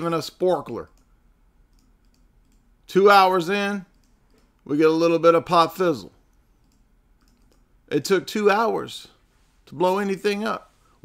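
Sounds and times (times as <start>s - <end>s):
man talking: 0.0s - 0.9s, 2.9s - 3.9s, 4.6s - 6.2s, 7.9s - 10.8s
faint clicks: 1.7s - 2.7s, 6.3s - 7.7s.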